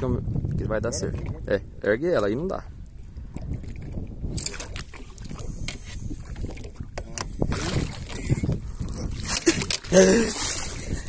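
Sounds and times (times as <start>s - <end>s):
water against boat: 0.0s - 11.0s
wind on microphone: 0.0s - 11.0s.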